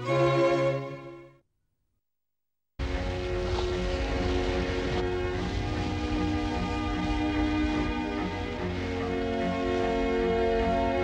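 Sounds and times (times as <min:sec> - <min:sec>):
low rumbling noise: 0:02.8 - 0:11.0.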